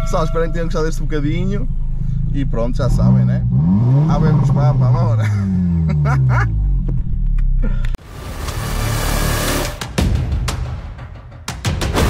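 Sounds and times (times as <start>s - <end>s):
outro music: 8.0s - 12.0s.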